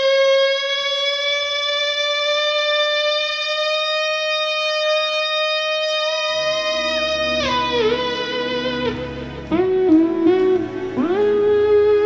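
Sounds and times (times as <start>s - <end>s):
electric guitar sustained note: 0.0s - 12.0s.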